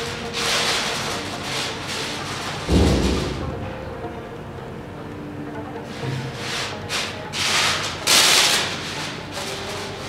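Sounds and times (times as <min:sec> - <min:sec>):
background music: 0:00.0 - 0:10.0
deep boom: 0:02.7 - 0:04.4.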